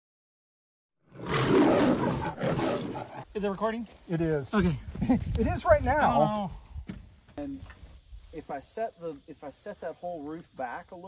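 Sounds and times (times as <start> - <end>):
lion roaring: 1.1 - 3.3.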